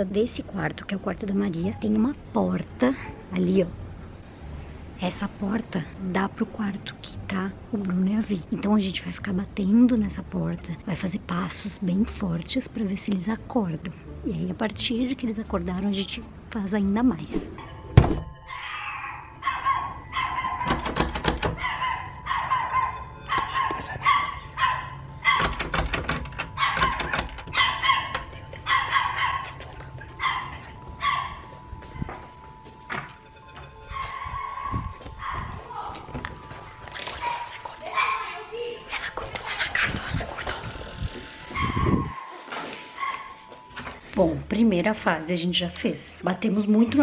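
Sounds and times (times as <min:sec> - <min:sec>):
dog barking: 0:18.5 - 0:25.7, 0:26.5 - 0:31.5, 0:33.9 - 0:35.8, 0:41.6 - 0:43.4
knocking on door: 0:20.6 - 0:21.6, 0:25.3 - 0:27.5.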